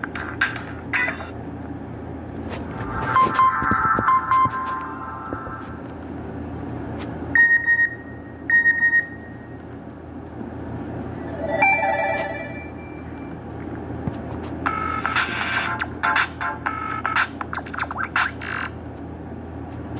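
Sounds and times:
phone ringtone melody: 3.1s - 5.2s, 11.2s - 13.0s.

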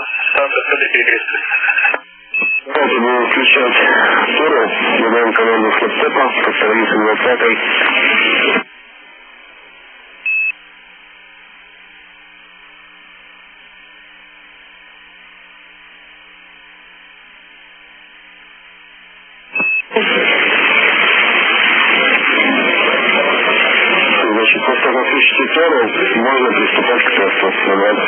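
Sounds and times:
faint radio hiss and hum: 0.0s - 28.0s
loud radio static hiss: 0.0s - 28.0s
short high beep: 19.6s - 19.9s.

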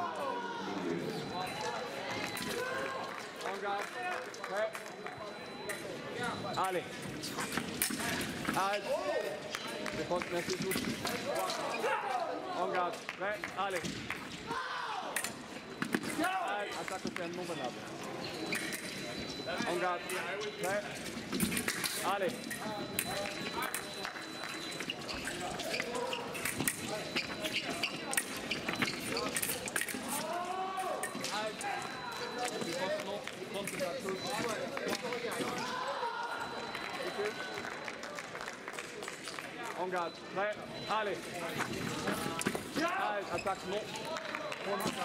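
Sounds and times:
murmur of many voices: 0.0s - 45.0s.

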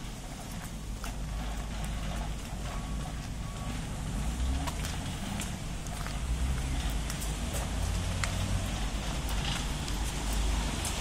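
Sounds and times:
footsteps on wet pavement: 0.0s - 11.0s
road traffic rumble: 0.0s - 11.0s.

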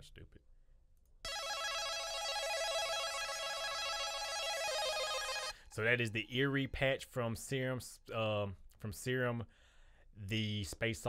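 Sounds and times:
fast synth arpeggio: 1.3s - 5.6s.

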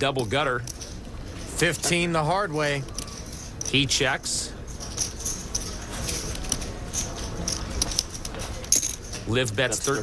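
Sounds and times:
low background hum: 0.0s - 10.0s
poker chips clicking: 2.8s - 3.9s, 4.8s - 10.0s.

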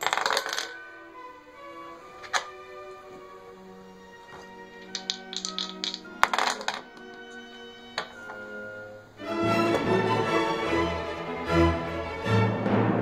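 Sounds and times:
game pieces clicking on board: 0.0s - 0.8s, 4.8s - 7.4s
background music: 0.0s - 13.0s.

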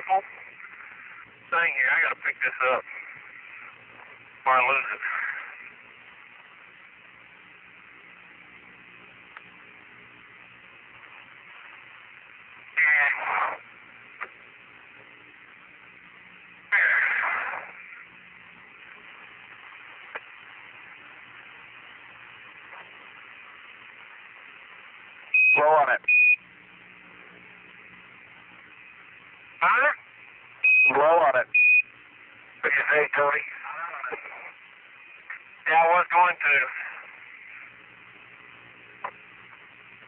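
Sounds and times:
person speaking over radio: 0.0s - 0.7s, 1.5s - 3.1s, 4.4s - 5.6s, 12.8s - 13.6s, 25.6s - 26.1s, 29.6s - 30.0s, 30.9s - 31.5s, 32.6s - 34.6s, 35.7s - 37.2s
faint hum: 0.0s - 40.0s
radio hiss: 0.0s - 40.0s.

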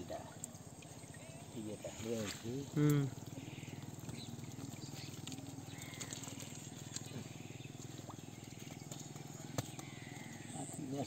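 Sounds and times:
frogs calling: 0.0s - 11.0s.

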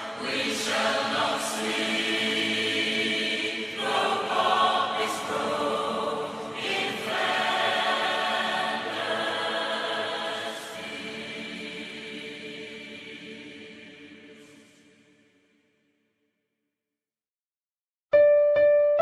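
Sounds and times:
choir singing chords: 0.0s - 15.6s.

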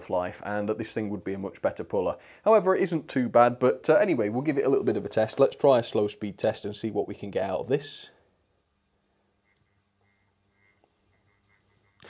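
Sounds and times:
faint model train motor buzz: 9.4s - 12.0s.

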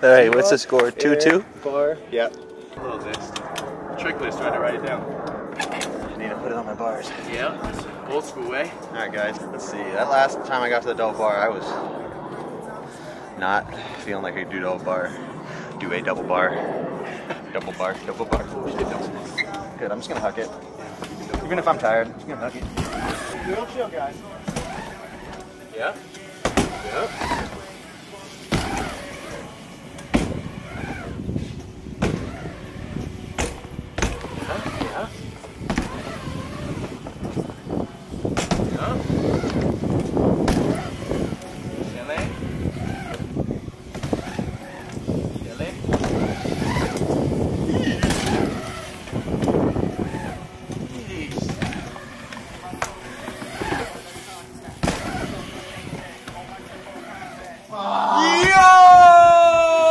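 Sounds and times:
bike tyres rolling on ramp: 17.6s - 57.5s.

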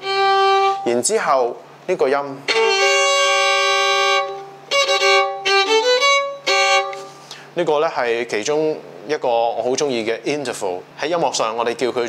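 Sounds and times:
violin bowing a double stop: 0.0s - 0.9s, 2.5s - 7.2s.

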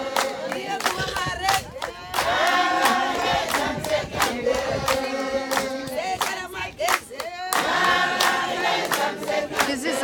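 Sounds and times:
women singing in unison: 0.0s - 10.0s
hand claps: 0.1s - 9.8s.

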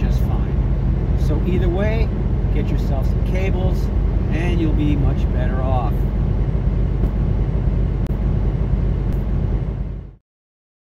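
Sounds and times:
diesel truck engine rumbling: 0.0s - 10.2s.

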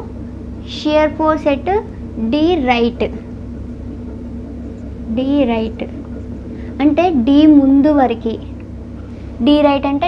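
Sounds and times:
faint constant tone: 0.0s - 10.0s
steady low hum: 0.0s - 10.0s.

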